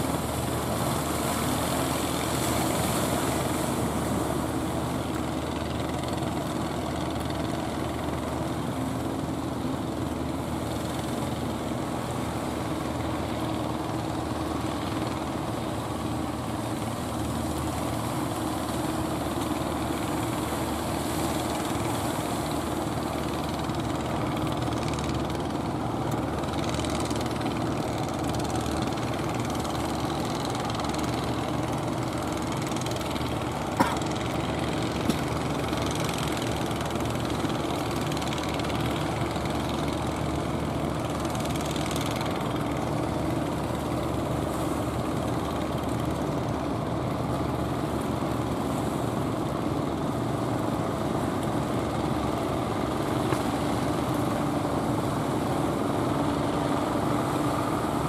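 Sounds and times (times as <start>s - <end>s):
boat engines droning: 0.0s - 58.0s.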